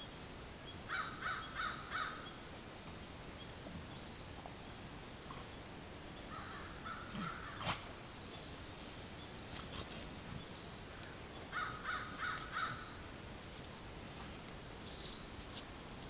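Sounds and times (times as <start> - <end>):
insects droning: 0.0 - 16.0.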